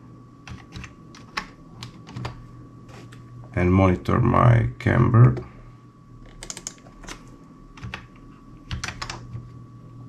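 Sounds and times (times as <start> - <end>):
faint steady hum: 0.0 - 10.0
computer keyboard keystrokes: 0.4 - 2.4, 6.2 - 7.2, 7.8 - 9.4.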